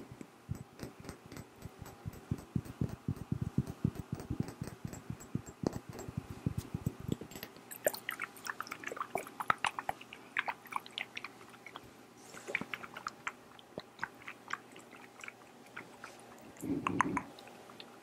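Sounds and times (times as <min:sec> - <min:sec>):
fingernails tapping glass bottle: 0:00.5 - 0:07.5.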